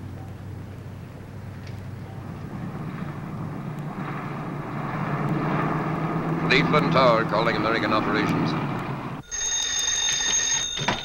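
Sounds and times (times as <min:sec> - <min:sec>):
telephone bell ringing: 0:09.2 - 0:11.0.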